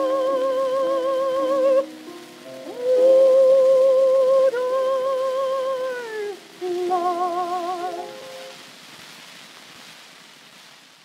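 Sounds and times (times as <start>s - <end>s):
contralto singing with vibrato: 0.0s - 8.6s
record surface hiss: 0.0s - 11.0s.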